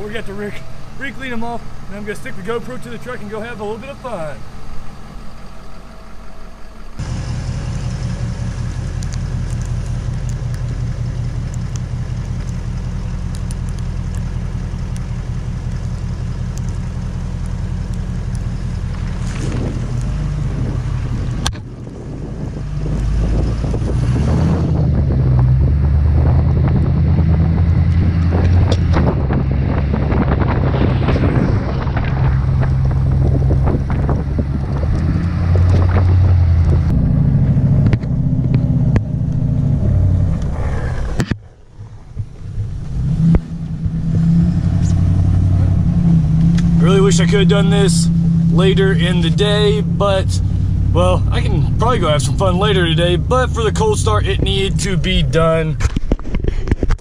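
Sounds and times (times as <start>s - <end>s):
diesel engine idling and driving: 0.0s - 56.0s
wind buffeting microphone: 15.2s - 57.0s.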